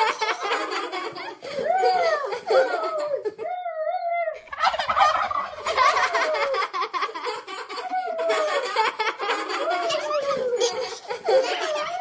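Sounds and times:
turkey gobbling: 0:04.5 - 0:06.6.

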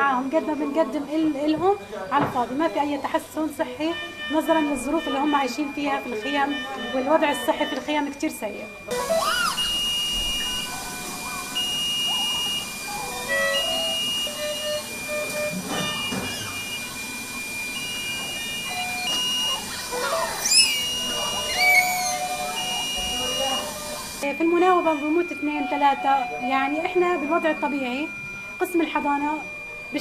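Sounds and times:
monitor alarms beeping: 0:00.0 - 0:30.0
steady high tone: 0:08.8 - 0:30.0.

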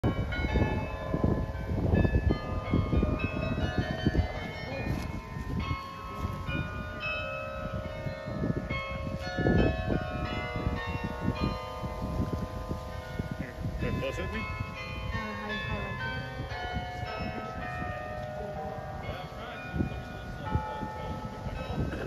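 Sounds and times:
carillon bells playing a tune: 0:00.0 - 0:22.0.

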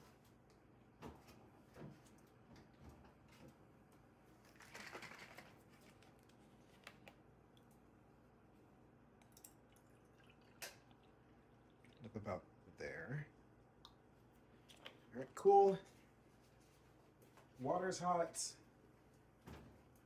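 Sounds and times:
milk carton rustle: 0:04.4 - 0:07.0.

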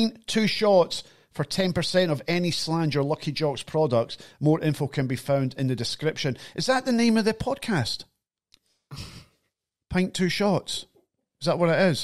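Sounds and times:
man sighing: 0:08.9 - 0:09.4.

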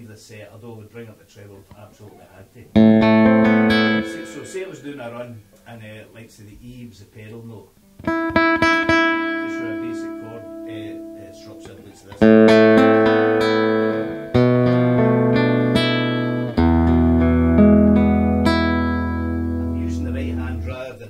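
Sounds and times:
nylon-string guitar fingerstyle: 0:02.7 - 0:05.0, 0:07.8 - 0:20.9
loud guitar chords ringing: 0:02.7 - 0:05.4, 0:08.0 - 0:21.0.

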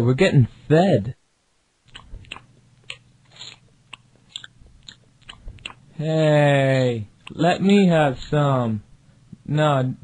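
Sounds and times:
low steady hum: 0:00.0 - 0:10.0
wet chewing and crunches: 0:01.9 - 0:05.9.

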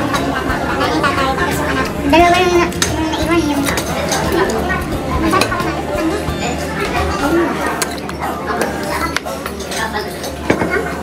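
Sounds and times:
background chatter: 0:00.0 - 0:11.0
cutlery clinking on plates: 0:03.6 - 0:04.6, 0:07.8 - 0:11.0.

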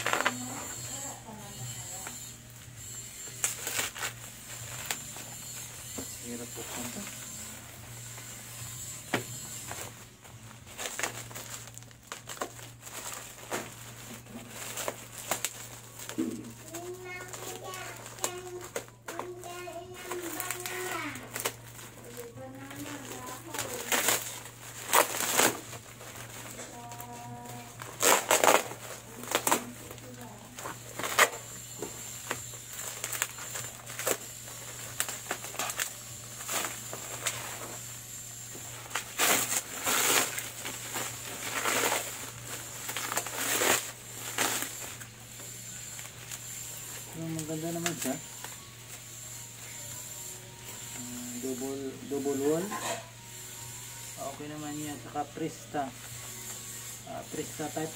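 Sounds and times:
bubble wrap crackling: 0:00.0 - 0:57.9.

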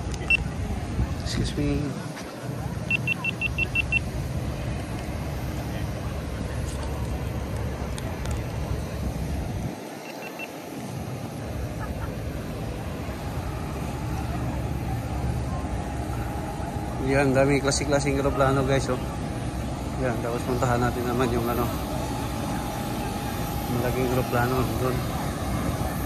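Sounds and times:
wind buffeting microphone: 0:00.0 - 0:02.9
short high beeps: 0:02.9 - 0:04.1, 0:10.0 - 0:10.6.

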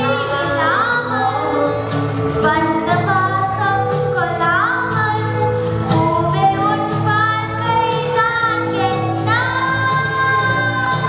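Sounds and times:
backing music: 0:00.0 - 0:11.0
girl singing into microphone: 0:00.0 - 0:11.0.

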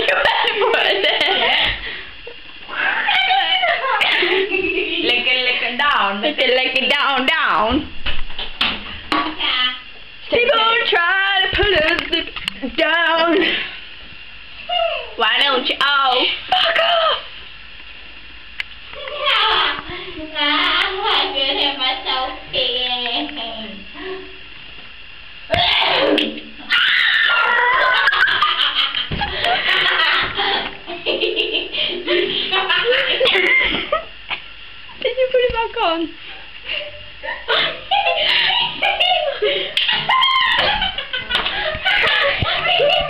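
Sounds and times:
women laughing: 0:00.0 - 0:05.3, 0:26.9 - 0:34.4, 0:36.6 - 0:43.0
women talking: 0:03.0 - 0:07.9, 0:09.4 - 0:13.7, 0:14.7 - 0:17.3, 0:19.0 - 0:24.4, 0:35.0 - 0:36.2, 0:41.8 - 0:43.0.

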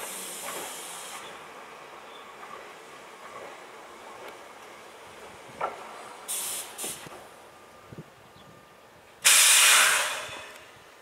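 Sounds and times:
compressed air hissing: 0:00.0 - 0:01.3, 0:06.3 - 0:07.1, 0:09.2 - 0:10.6.

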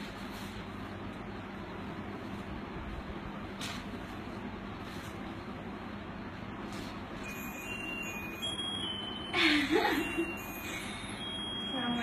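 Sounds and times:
tinny electronic chime tune: 0:07.2 - 0:12.0.

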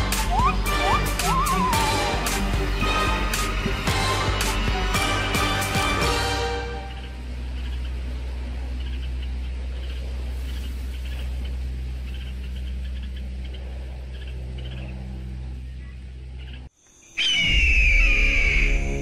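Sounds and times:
small bird chirping: 0:00.2 - 0:01.9, 0:07.0 - 0:18.9
steady low hum: 0:06.4 - 0:17.0
raptor screech: 0:17.2 - 0:19.0.

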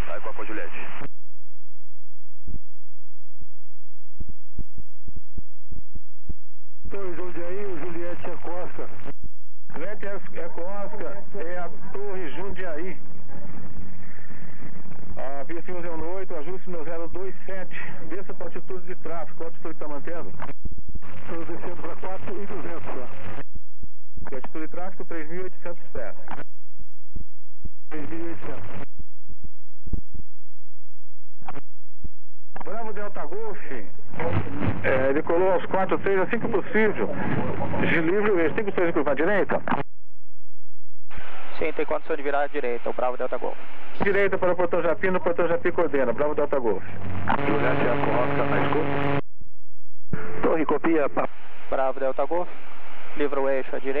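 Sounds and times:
pilot radio voices: 0:21.0 - 0:23.4, 0:27.9 - 0:28.8, 0:32.6 - 0:39.8, 0:41.6 - 0:49.2.

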